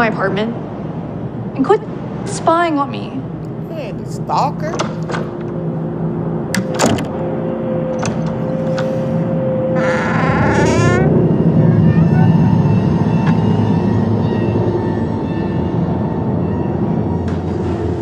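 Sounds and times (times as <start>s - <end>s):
low rumbling horror underscore: 0.0s - 18.0s.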